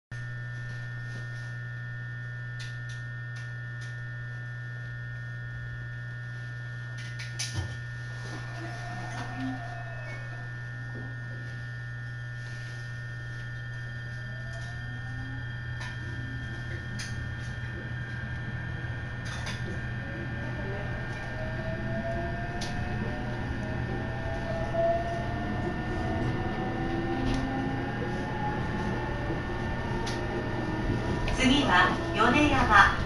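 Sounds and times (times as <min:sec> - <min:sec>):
electrical hum with high tone: 0:00.1 - 0:33.0
train motor whine: 0:00.2 - 0:33.0.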